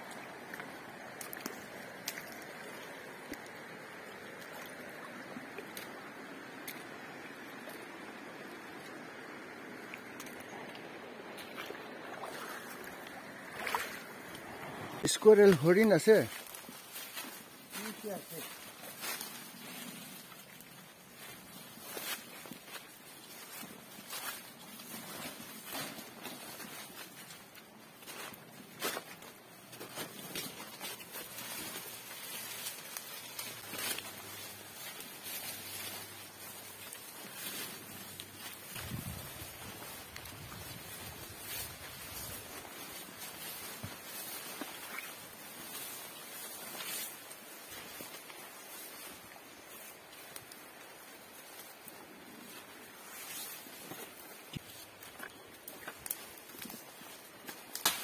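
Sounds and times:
vegetation rustling: 0.0 - 58.0
footsteps crunching dry leaves: 11.4 - 58.0
twigs snapping: 57.4 - 58.0.

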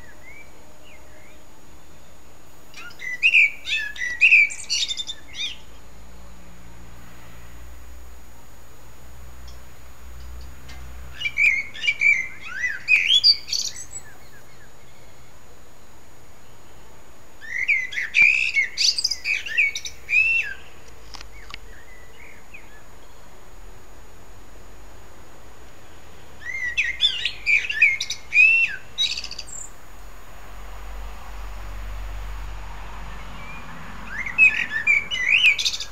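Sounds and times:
songbird singing: 0.0 - 35.9.

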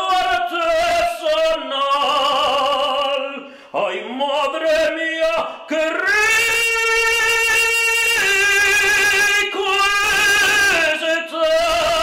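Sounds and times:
man singing operatically: 0.0 - 12.0.

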